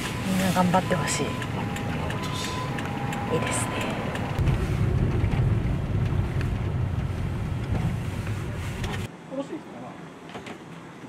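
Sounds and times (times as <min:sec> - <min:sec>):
van road and engine rumble: 0:00.0 - 0:09.2.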